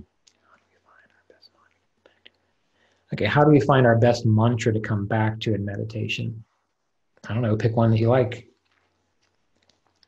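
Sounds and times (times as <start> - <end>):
man whispering: 0.0 - 2.4, 3.0 - 6.5, 7.2 - 8.4.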